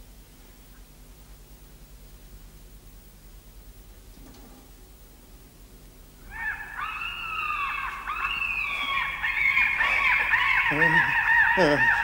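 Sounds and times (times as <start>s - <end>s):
shrill wavering cries: 6.3s - 12.0s.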